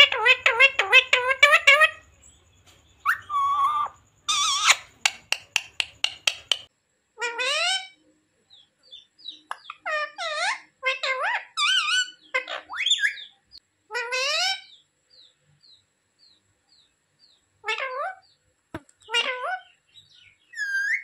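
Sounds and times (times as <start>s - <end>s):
parakeet calls and squawks: 0.0s - 2.4s, 3.0s - 8.0s, 8.9s - 14.8s, 17.6s - 18.4s, 19.0s - 21.0s
sharp click: 5.0s - 6.7s.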